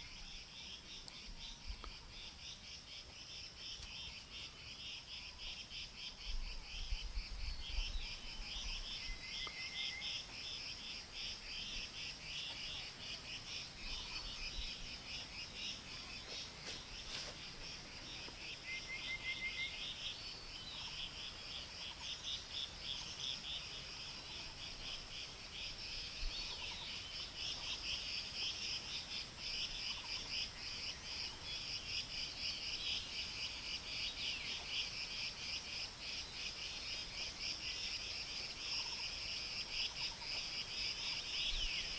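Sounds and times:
insects chirring: 0.0 - 41.9.

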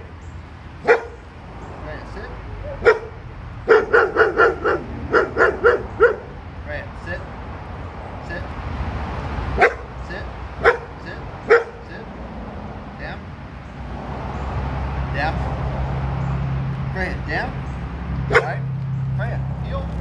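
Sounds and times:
dog barking: 0.8 - 1.2, 2.6 - 6.4, 9.6 - 9.9, 10.6 - 11.8, 18.3 - 18.6.

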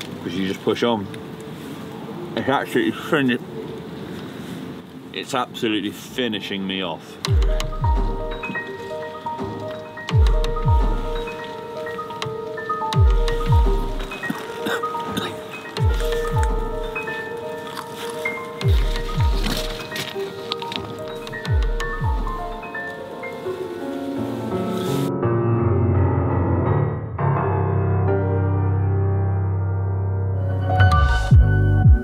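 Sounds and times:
held and plucked notes: 7.2 - 25.4
deep heartbeat-like thuds: 7.3 - 8.5, 10.1 - 11.3, 13.0 - 14.2, 15.8 - 17.0, 18.6 - 19.8, 21.4 - 22.6.

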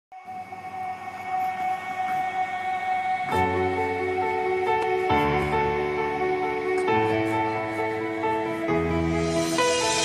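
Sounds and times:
sustained chord music: 0.2 - 10.0.

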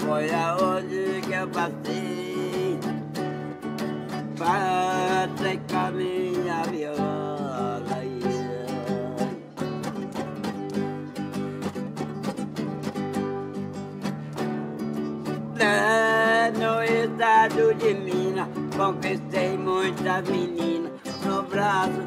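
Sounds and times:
man singing: 0.0 - 3.3, 4.1 - 10.0, 15.5 - 22.0
acoustic guitar strumming: 0.0 - 22.0.

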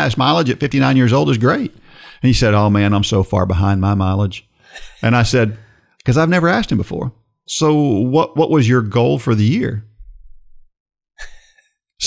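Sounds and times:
man breathing into microphone: 1.8 - 2.2.

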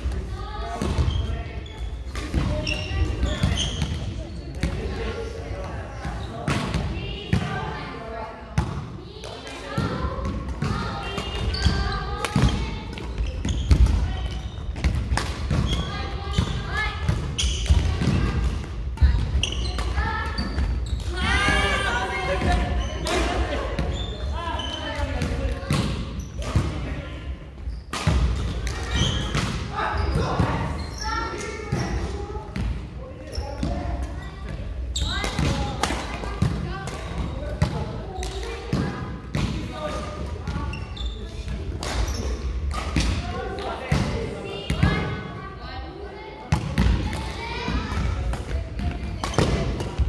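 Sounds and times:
voices in a hall: 0.0 - 50.0.

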